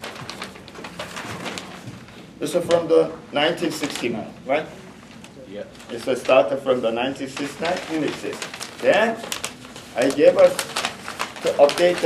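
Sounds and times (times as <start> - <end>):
paper rustling and crinkling: 0.0 - 3.0, 3.6 - 4.2, 5.0 - 12.0.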